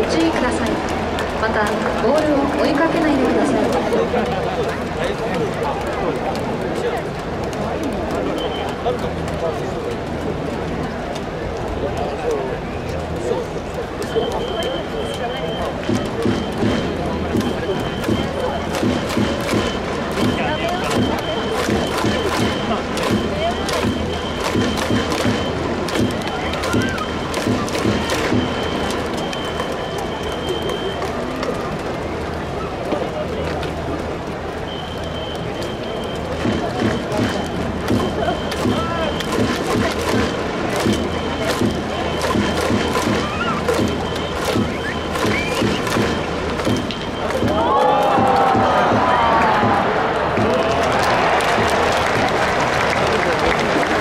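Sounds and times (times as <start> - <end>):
hubbub of spectators' voices: 0.0 - 54.0
people clapping: 0.0 - 54.0.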